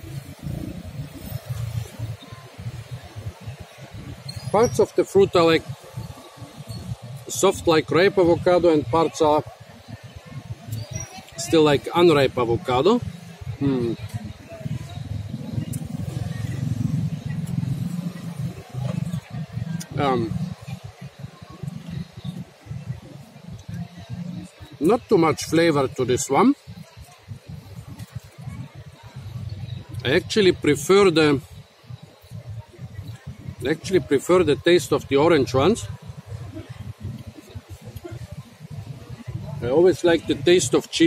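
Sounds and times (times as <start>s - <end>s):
wind buffeting microphone: 26.6s - 39.7s.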